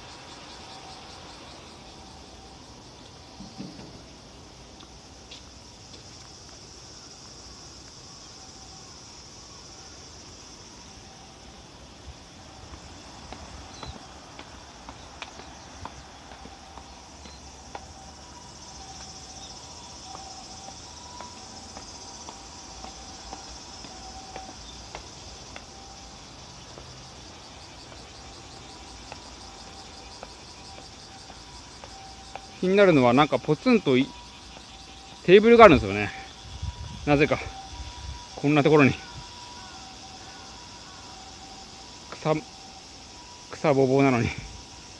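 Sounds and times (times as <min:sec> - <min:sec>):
insects calling: 0:00.0 - 0:44.9
footsteps on tiled stairs: 0:03.0 - 0:08.1, 0:11.5 - 0:36.4.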